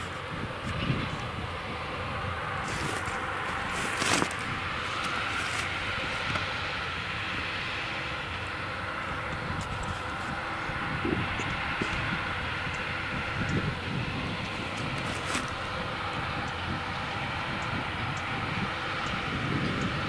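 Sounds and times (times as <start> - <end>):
tractor and baler drone: 0.0 - 20.0.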